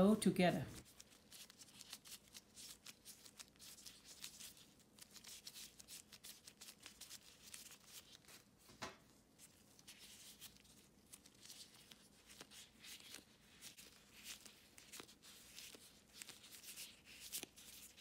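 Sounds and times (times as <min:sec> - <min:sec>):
plastic gloves crinkling: 0:00.1 - 0:18.0.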